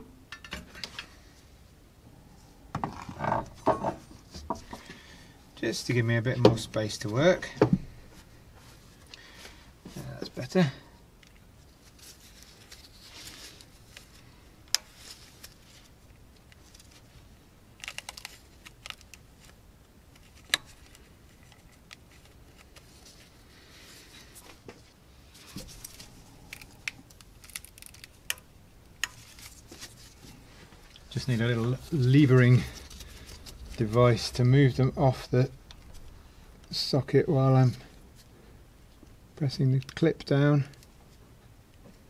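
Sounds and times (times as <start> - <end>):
gloved hands rustling: 11.2 - 38.4.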